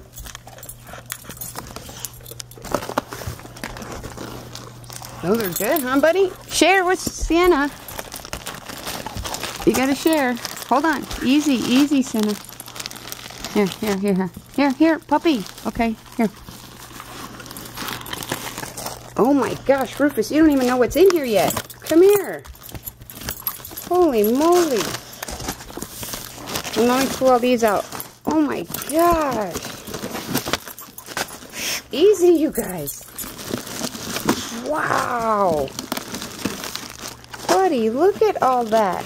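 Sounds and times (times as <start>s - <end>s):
dogs chewing and crunching: 0.0s - 39.0s
packaging crinkling and rustling: 0.0s - 39.0s
light metallic jingling: 5.1s - 6.7s.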